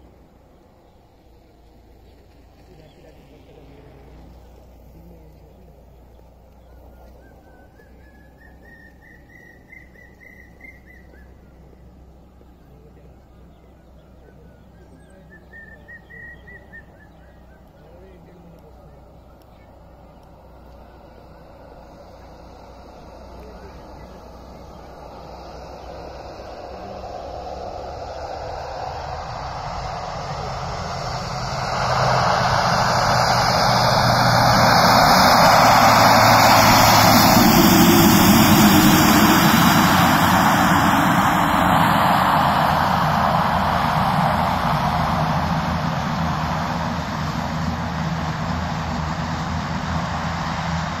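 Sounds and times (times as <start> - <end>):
turboprop aircraft engines running: 0.0 - 51.0.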